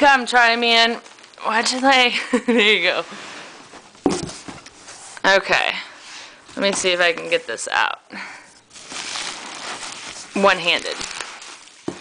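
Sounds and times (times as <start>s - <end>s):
bubble wrap rustling and crinkling: 0.0s - 5.4s, 8.6s - 12.0s.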